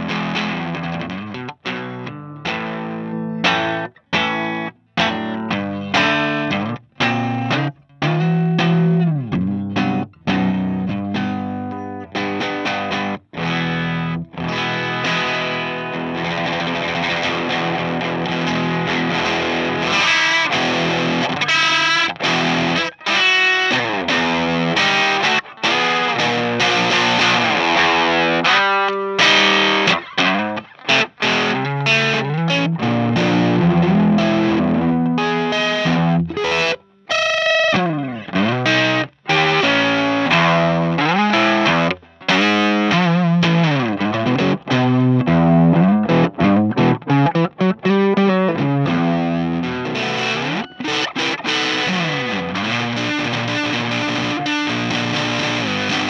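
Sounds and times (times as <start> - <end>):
distorted electric guitar chords: 0.0 - 56.0.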